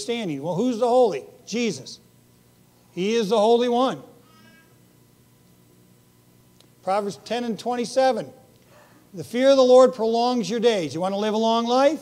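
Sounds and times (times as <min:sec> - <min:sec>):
faint high-pitched squeak: 0:04.2 - 0:04.8.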